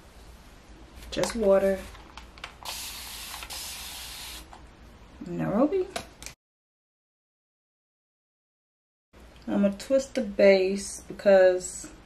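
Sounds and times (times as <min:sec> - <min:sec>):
spray bottle hissing: 0:02.6 - 0:04.5.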